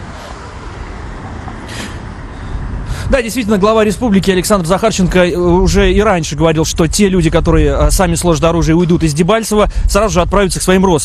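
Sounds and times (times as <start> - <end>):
road traffic rumble: 0.0 - 11.0
short hiss: 1.6 - 2.1.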